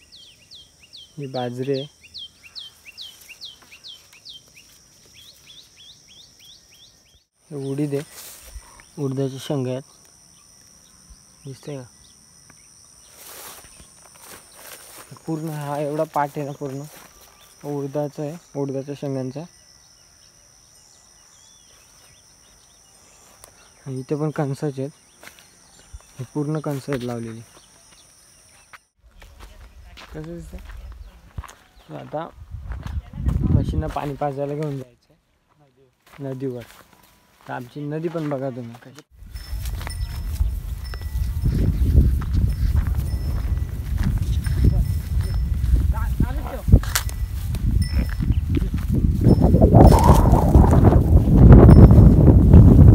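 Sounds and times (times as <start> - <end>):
faint bird chirps: 0.0 - 29.9
animals walking through dry grass: 1.3 - 11.0, 12.6 - 18.8, 21.2 - 24.0, 24.9 - 52.9
high-pitched insect drone: 7.4 - 28.8, 39.2 - 52.9
wind rumble on microphone: 32.3 - 34.2, 39.2 - 52.9.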